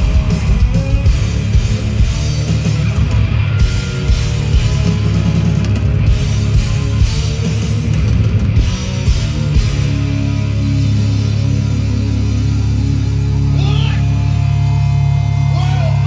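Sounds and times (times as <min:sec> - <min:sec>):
live heavy rock band: 0:00.0 - 0:16.0.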